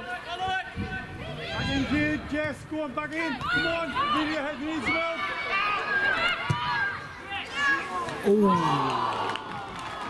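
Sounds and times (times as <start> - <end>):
players and spectators shouting: 0.0 - 10.0.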